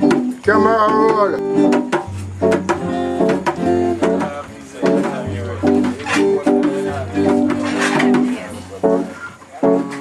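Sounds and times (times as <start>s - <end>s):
strummed guitar chords: 0.0s - 10.0s.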